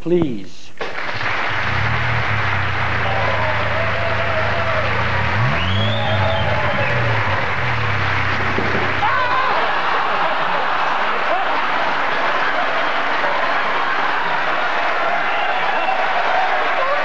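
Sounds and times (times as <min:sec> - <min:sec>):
audience applauding and cheering: 0:00.8 - 0:17.0
rally car engine revving: 0:01.2 - 0:09.1.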